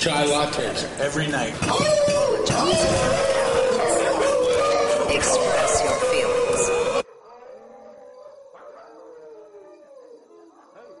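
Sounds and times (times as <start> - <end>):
dog howling faintly: 1.7 - 11.0.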